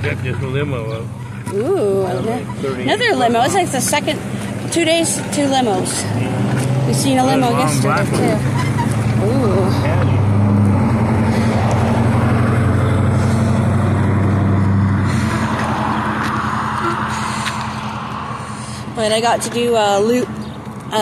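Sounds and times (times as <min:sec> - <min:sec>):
car engine humming: 0:00.0 - 0:21.0.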